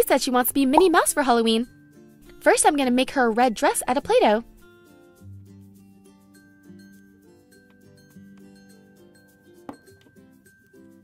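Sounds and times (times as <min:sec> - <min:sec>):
light instrumental background music: 0:00.0 - 0:11.0.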